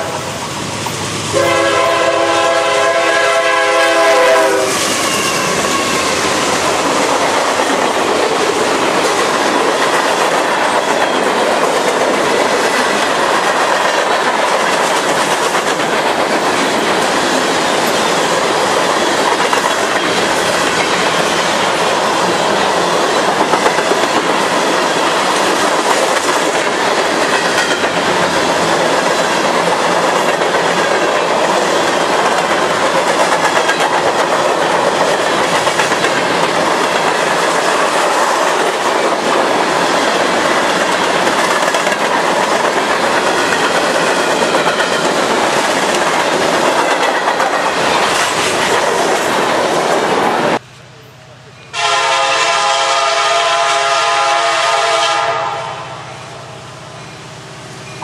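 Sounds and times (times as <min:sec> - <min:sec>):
freight train wheels on rails: 0:00.0 - 0:58.0.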